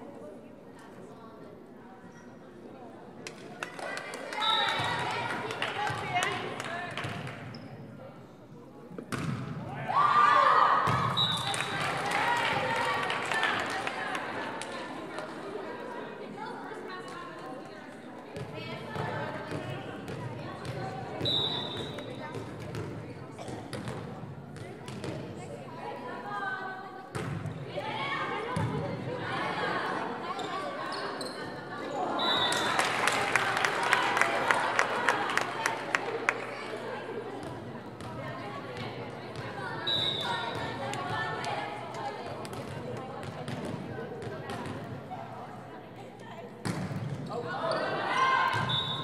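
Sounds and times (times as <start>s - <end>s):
ball bouncing on gym floor: 9.1s - 9.6s
volleyball bouncing on gym floor: 9.1s - 9.6s, 18.4s - 25.3s, 46.6s - 47.3s
echoing indistinct voices: 9.6s - 46.6s
whistle blast: 48.6s - 49.0s.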